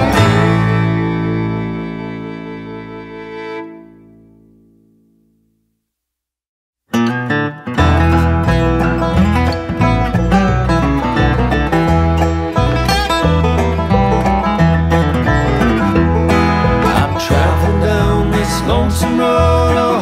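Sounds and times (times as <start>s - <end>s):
banjo: 0.0s - 4.0s, 7.0s - 20.0s
bluegrass string band playing: 0.0s - 4.3s, 7.7s - 20.0s
bass line: 0.0s - 5.6s, 7.0s - 20.0s
guitar: 0.0s - 5.7s, 6.9s - 20.0s.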